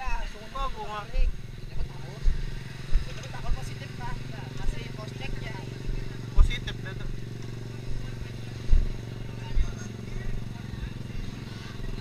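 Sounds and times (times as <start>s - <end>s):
faint voices: 0.0s - 12.0s
vehicle engine idling: 0.0s - 12.0s
low thuds on microphone: 8.6s - 9.0s.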